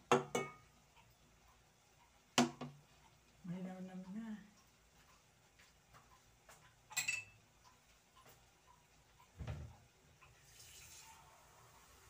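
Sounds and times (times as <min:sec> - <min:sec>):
water running: 0:09.4 - 0:12.0.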